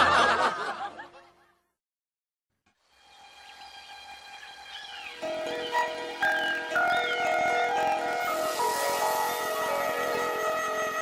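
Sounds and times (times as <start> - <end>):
people laughing: 0.0 - 1.5.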